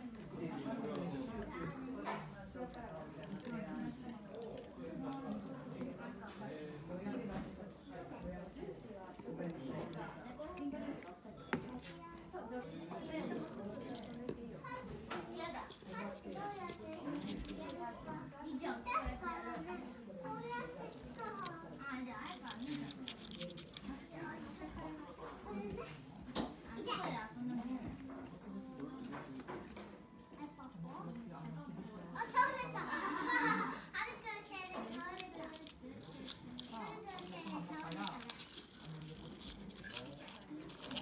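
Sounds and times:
chatter of voices: 0:00.0 - 0:41.0.

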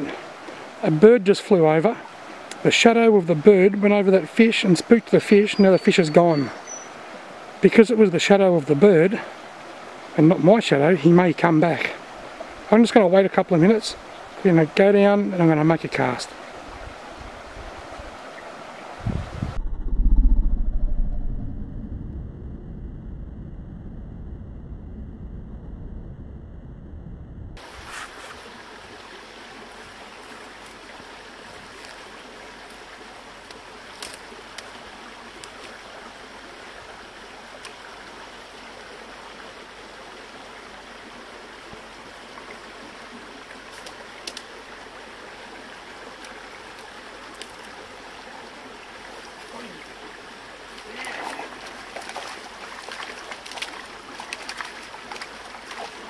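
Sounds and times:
stream running water: 0:00.0 - 0:19.6, 0:27.6 - 0:56.0
muffled low rumble: 0:19.0 - 0:27.6
faint clicks: 0:43.7 - 0:44.5.

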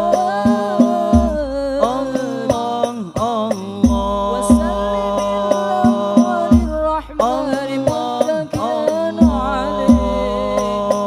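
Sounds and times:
frame drums booming: 0:00.0 - 0:10.9
men chanting in unison: 0:00.0 - 0:11.0.

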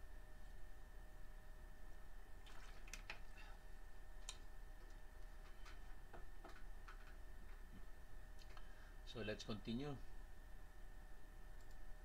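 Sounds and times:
faint high whine: 0:00.0 - 0:12.0
low electrical hum: 0:00.0 - 0:12.0.

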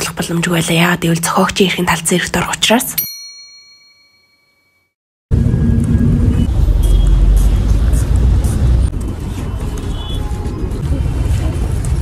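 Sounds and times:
city traffic rumble: 0:05.3 - 0:12.0.

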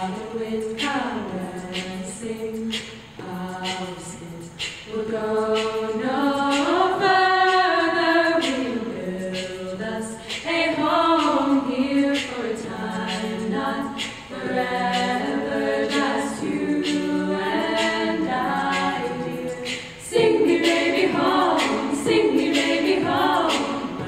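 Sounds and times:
women singing in harmony: 0:00.0 - 0:24.0.

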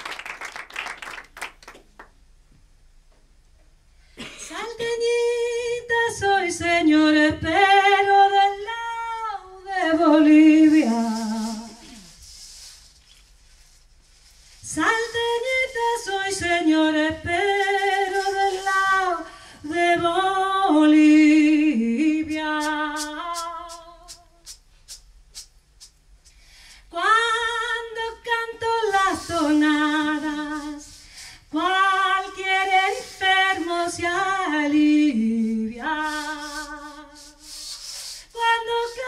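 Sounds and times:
woman singing unaccompanied: 0:04.5 - 0:12.0, 0:14.7 - 0:24.2, 0:26.9 - 0:37.4, 0:38.4 - 0:39.0.

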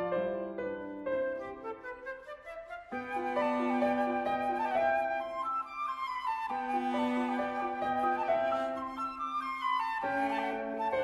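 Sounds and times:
flute cello and piano trio: 0:00.0 - 0:11.0.

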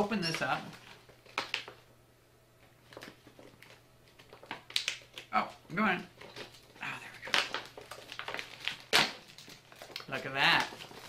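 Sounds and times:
plastic bag crinkling: 0:02.8 - 0:11.0
plastic bag tearing: 0:06.2 - 0:11.0.

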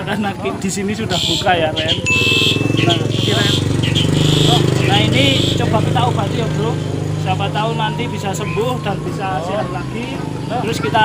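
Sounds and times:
small motorcycle engine puttering: 0:01.1 - 0:05.7.

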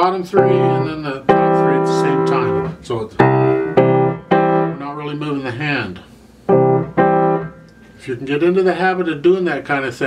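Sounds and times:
piano chords ringing: 0:00.0 - 0:05.9, 0:06.5 - 0:07.7.

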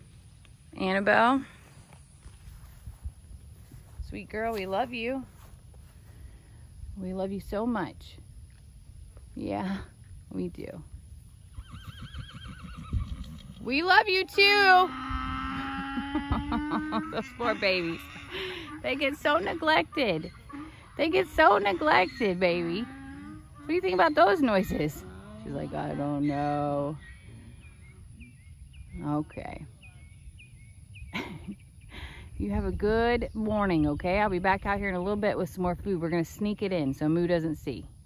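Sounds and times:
horse whinnying: 0:11.5 - 0:13.8, 0:14.4 - 0:28.0
faint bird chirping: 0:17.2 - 0:25.5, 0:26.6 - 0:32.4.

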